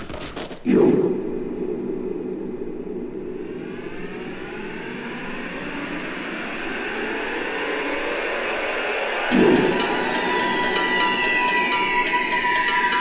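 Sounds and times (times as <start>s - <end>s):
low rushing noise: 0.7s - 12.4s
rising synthesizer sweep: 0.7s - 12.5s.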